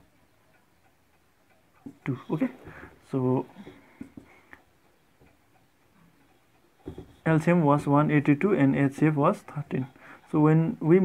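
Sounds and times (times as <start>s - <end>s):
marker pen tapping on whiteboard: 6.8s - 7.2s.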